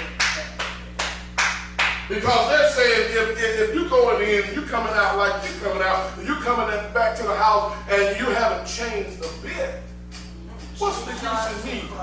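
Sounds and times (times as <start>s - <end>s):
rhythmic hand clapping: 0.0s - 2.4s, 9.2s - 11.4s.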